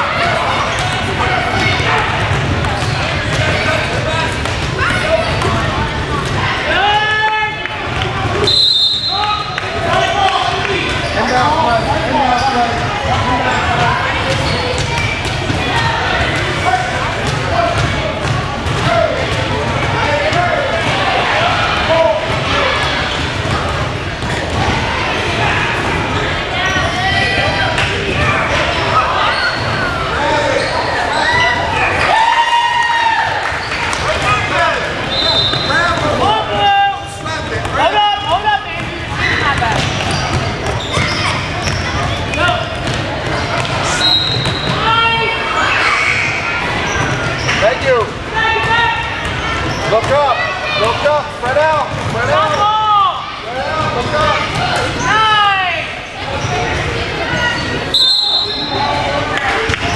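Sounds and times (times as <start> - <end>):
crowd voices in a hall: 0.0 - 59.9.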